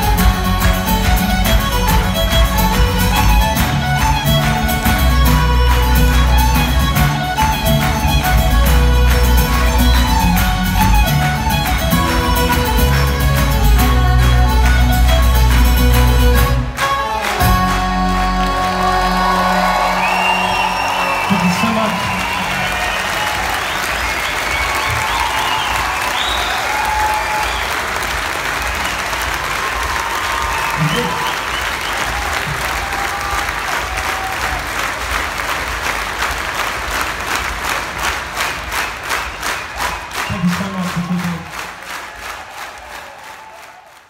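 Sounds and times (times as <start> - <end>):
folk band playing: 0.0 - 22.8
crowd applauding and cheering: 0.0 - 44.0
rhythmic unison clapping: 0.0 - 44.0
crowd cheering and whooping: 18.1 - 35.0, 42.0 - 44.0.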